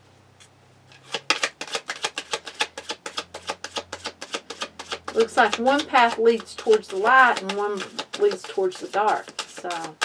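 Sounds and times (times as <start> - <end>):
cards being shuffled: 0.9 - 10.0.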